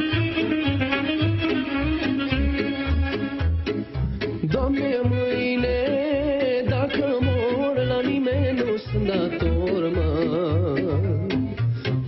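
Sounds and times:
folk band with steady bass: 0.0 - 12.0
man singing ornamented melody: 4.4 - 11.4.

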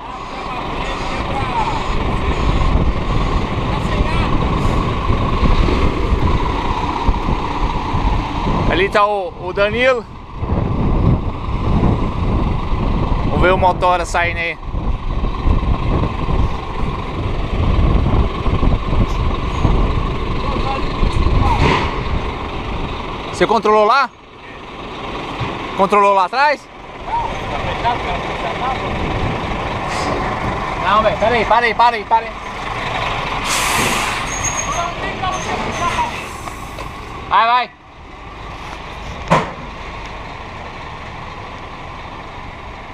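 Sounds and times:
diesel truck engine running: 0.0 - 42.9
short air hiss: 33.4 - 34.6.

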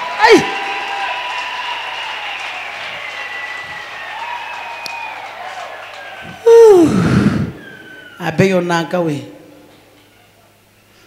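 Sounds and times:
loud shout falling pitch: 0.0 - 8.4
congregation applauding: 0.0 - 8.6.

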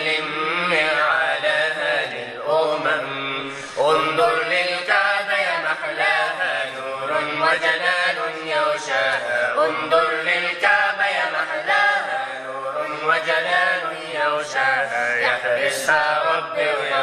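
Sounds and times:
man singing: 0.0 - 17.0.

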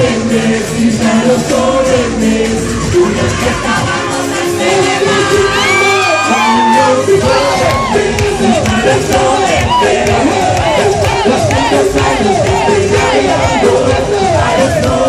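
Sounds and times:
crowd shouting and cheering: 0.0 - 15.0
loud live music: 0.0 - 15.0.

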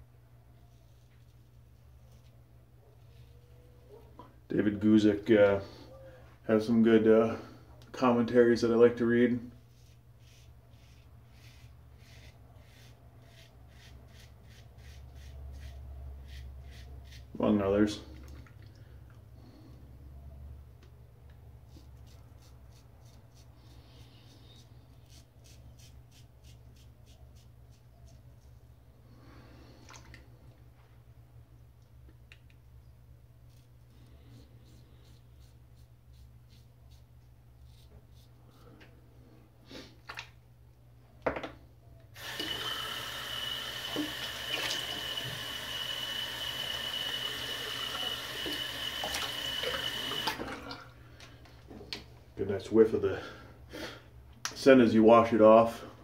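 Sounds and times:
razor scraping stubble: 9.6 - 17.4, 21.7 - 28.2, 33.5 - 38.3
tap water running into sink: 42.2 - 50.7.

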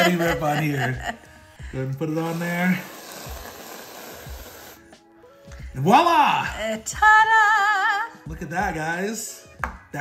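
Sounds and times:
aerosol can spraying hiss: 2.1 - 5.0.

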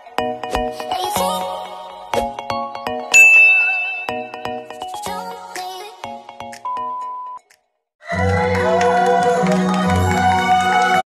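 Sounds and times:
bright electronic ding: 3.2 - 4.7.

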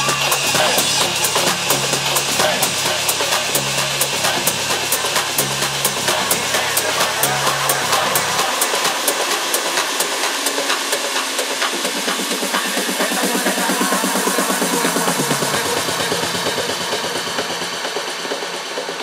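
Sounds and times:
house music over sound system: 0.0 - 19.0.

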